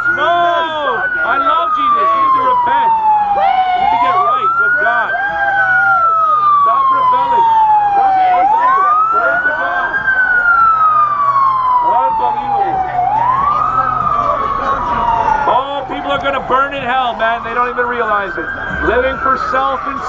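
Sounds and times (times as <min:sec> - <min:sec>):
siren wailing: 0:00.0 - 0:20.0
crowd shouting: 0:03.2 - 0:06.6.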